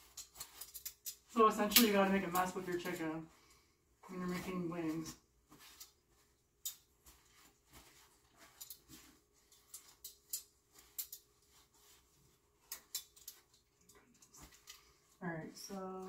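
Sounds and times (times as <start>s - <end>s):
paper towel rustling: 1.3s - 12.7s.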